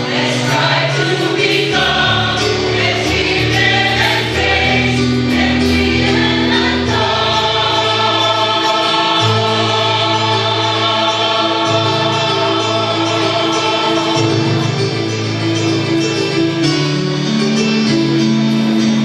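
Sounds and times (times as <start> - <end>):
mixed choir singing: 0.0 - 15.4.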